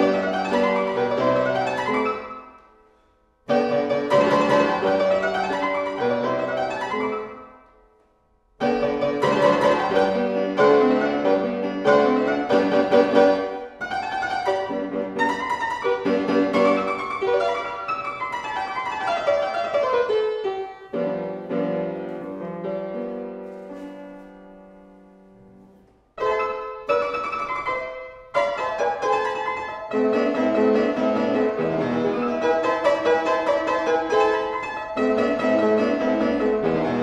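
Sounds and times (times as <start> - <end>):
solo classical keyboard music: 0.0 - 37.0.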